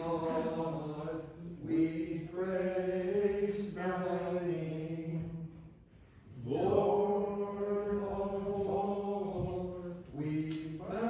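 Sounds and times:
chant-like hymn singing: 0.0 - 11.0.

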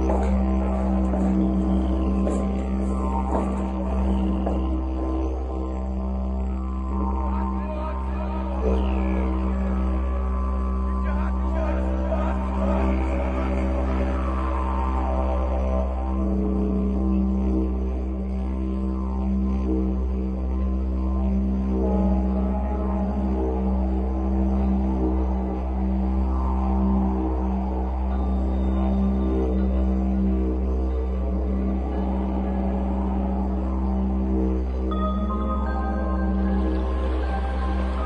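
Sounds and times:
didgeridoo low drone: 0.0 - 38.0.

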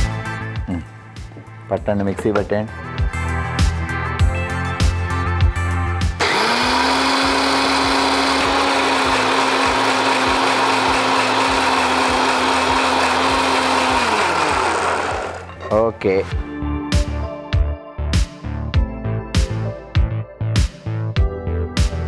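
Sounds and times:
background music with a beat: 0.0 - 6.2, 16.3 - 22.0
blender winding down whine: 6.2 - 15.5
kitchen blender grinding: 6.2 - 15.5.

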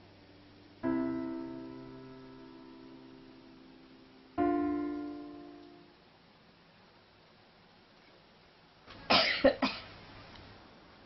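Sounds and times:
person coughing: 9.1 - 9.9.

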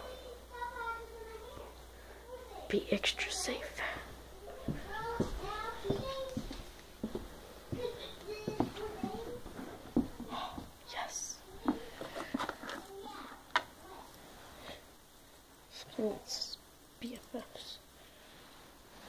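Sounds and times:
child talking: 0.0 - 6.6, 7.7 - 10.2, 10.9 - 12.0, 12.6 - 14.2, 15.7 - 17.8.

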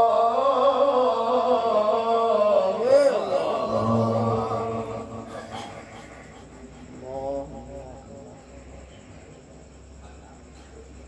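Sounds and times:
steady low hum: 0.0 - 11.0
man reciting: 2.2 - 5.7, 6.9 - 8.5.

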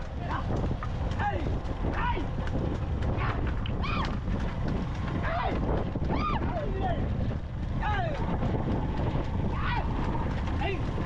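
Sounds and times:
wind and road rumble: 0.0 - 11.0.

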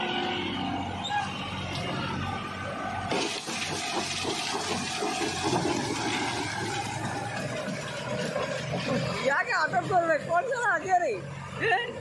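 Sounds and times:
tractor churning wet mud: 0.0 - 11.6
tractor engine running: 0.8 - 12.0.

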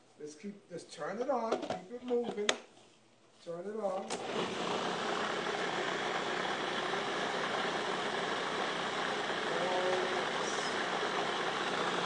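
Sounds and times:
food processor motor running: 4.1 - 12.0.

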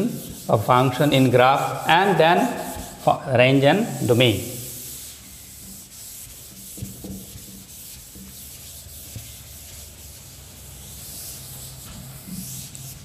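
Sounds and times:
duster rubbing chalkboard: 0.0 - 13.0.

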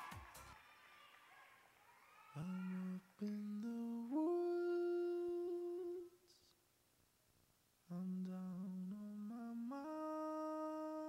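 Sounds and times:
person humming long notes: 7.9 - 11.0.

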